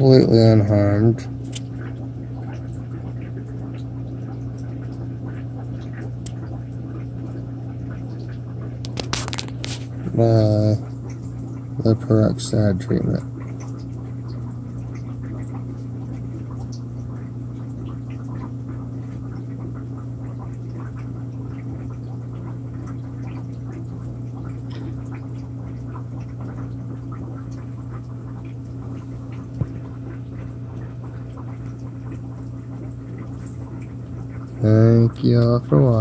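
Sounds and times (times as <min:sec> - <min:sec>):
aquarium equipment hum: 0:00.0 - 0:36.0
bubbling and trickling water: 0:00.0 - 0:36.0.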